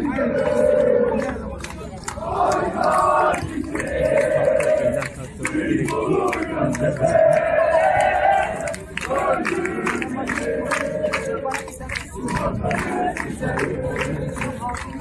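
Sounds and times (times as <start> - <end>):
crowd chanting in unison: 0.0 - 15.0.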